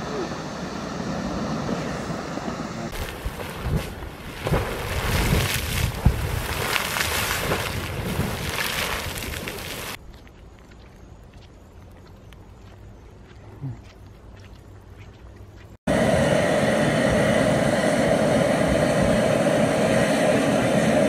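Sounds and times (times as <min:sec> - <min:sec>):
geyser water rushing: 0:00.0 - 0:10.0
geyser water jetting and splashing: 0:02.8 - 0:10.0.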